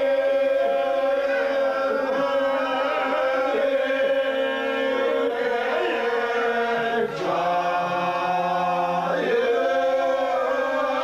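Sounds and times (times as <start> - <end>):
men singing unaccompanied: 0.0 - 11.0.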